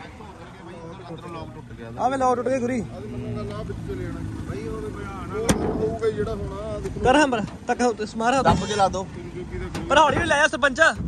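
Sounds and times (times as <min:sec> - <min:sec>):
faint men's voices: 0:00.0 - 0:11.0.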